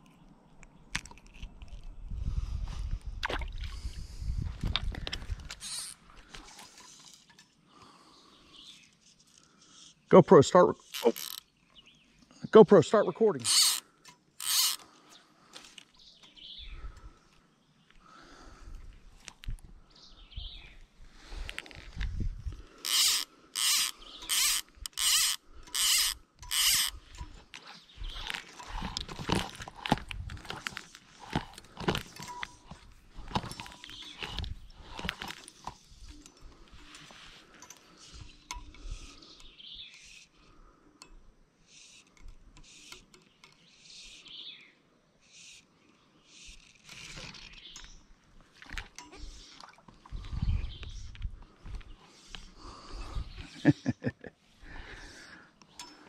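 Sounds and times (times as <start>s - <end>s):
rod and line clicks and rustles: 0.0s - 2.2s, 2.8s - 7.7s, 10.8s - 11.8s, 13.4s - 18.0s, 18.6s - 19.8s, 21.3s - 41.2s, 41.8s - 44.3s, 46.3s - 52.6s, 55.6s - 56.0s
fly reel ratcheting buzzes: 10.9s - 11.4s, 13.4s - 13.8s, 14.4s - 14.8s, 22.8s - 27.3s, 41.7s - 43.1s.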